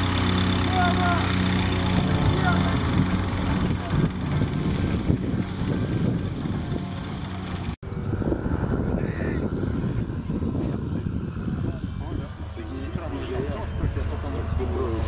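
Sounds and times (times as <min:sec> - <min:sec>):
small piston engine idling: 0:00.0 - 0:07.8.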